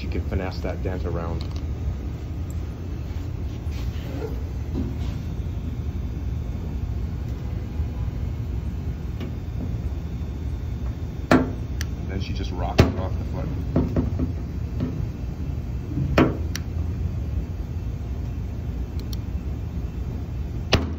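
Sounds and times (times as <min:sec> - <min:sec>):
low workshop rumble: 0:00.0 - 0:20.9.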